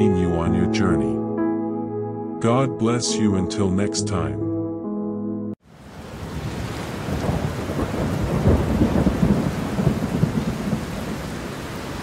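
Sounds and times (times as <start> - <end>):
steady rain: 5.6 - 12.0
thunder rumbling: 5.9 - 12.0.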